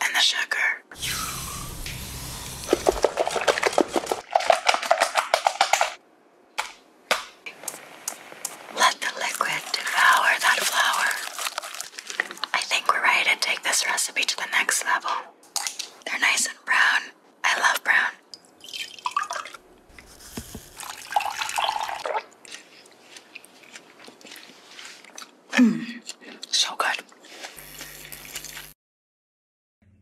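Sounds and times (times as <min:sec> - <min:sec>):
woman talking: 0:08.7 - 0:11.3.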